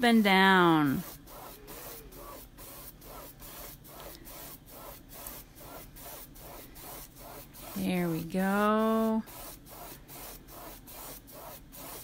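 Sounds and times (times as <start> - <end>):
paintbrush swishing on canvas: 0.7 - 12.0.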